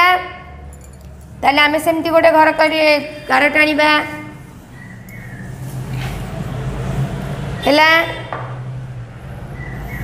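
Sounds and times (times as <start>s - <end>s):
motor vehicle humming: 3.8s - 10.0s.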